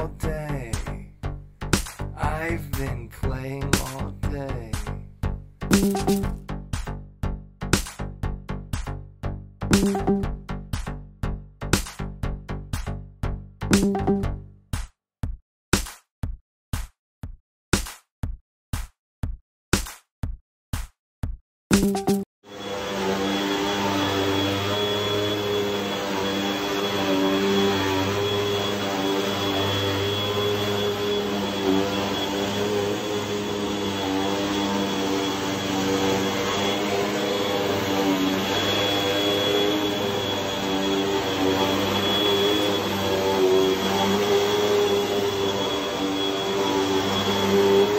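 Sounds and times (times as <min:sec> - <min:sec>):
vacuum cleaner running: 0:22.5 - 0:47.9.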